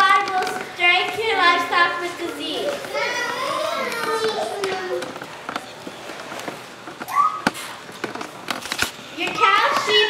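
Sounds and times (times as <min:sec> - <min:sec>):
children's high-pitched voices: 0:00.0 - 0:05.2, 0:07.1 - 0:07.5.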